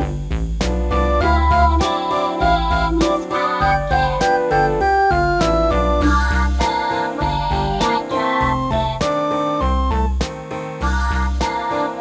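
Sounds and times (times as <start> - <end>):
children's keyboard tune over beat: 0.8 - 12.0.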